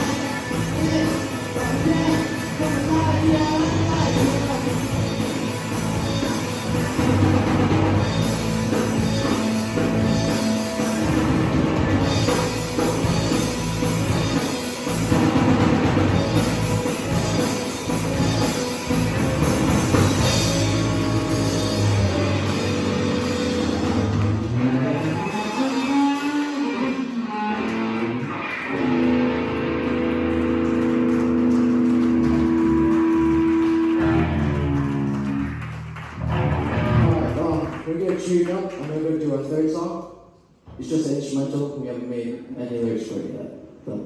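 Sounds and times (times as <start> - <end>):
electric bass: 0.0 - 37.7
electric guitars: 0.0 - 37.8
live rock band: 0.0 - 38.3
drum kit: 0.0 - 38.8.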